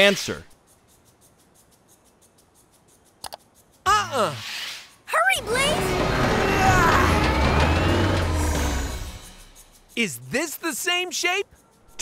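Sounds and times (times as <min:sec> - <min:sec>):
cartoon monster truck engine rumbling: 0:05.3 - 0:09.8
background music: 0:05.4 - 0:10.0.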